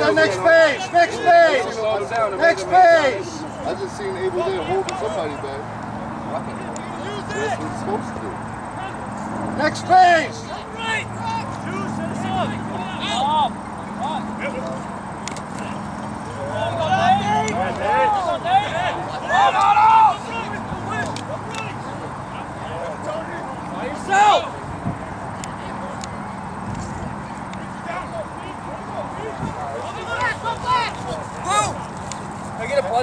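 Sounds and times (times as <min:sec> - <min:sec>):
men shouting: 0:00.0 - 0:05.7, 0:06.8 - 0:24.7, 0:27.8 - 0:31.8.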